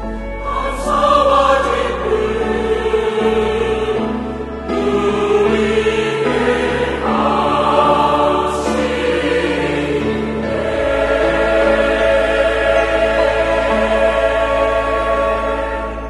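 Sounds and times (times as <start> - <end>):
choir singing sustained chords: 0.0 - 16.0
orchestral accompaniment: 0.0 - 16.0.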